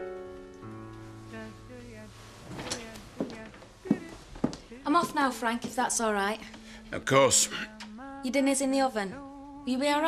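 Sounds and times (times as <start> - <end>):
soft piano music: 0.0 - 7.6.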